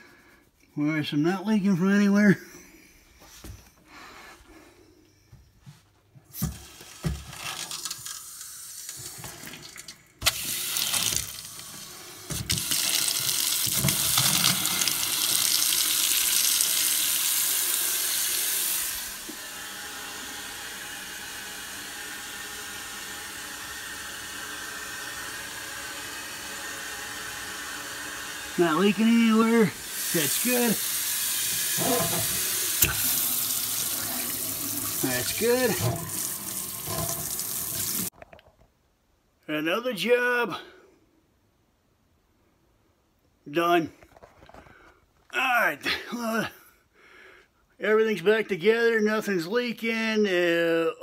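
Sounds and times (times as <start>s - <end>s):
water running into steel sink: 6.6s - 19.3s, 29.6s - 38.1s.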